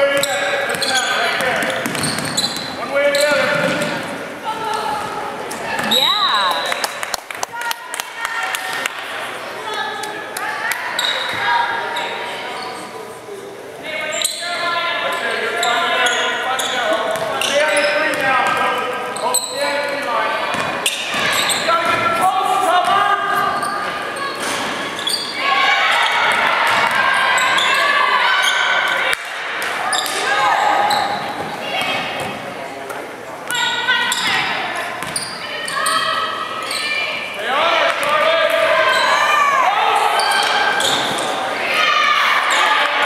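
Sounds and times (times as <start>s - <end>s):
basketball bouncing on wooden floor: 1.6s - 2.5s
people calling out and shouting: 13.8s - 32.4s, 33.4s - 43.0s.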